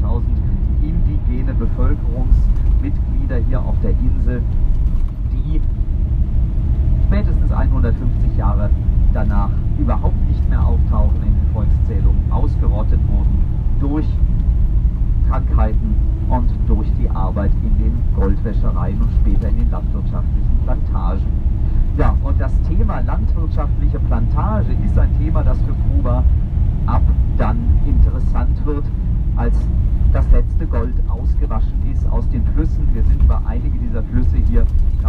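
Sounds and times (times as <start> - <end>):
person talking: 0.0 - 4.4, 7.1 - 14.2, 15.3 - 21.2, 21.9 - 26.2, 26.9 - 34.7
bus engine and road rumble: 0.0 - 35.0.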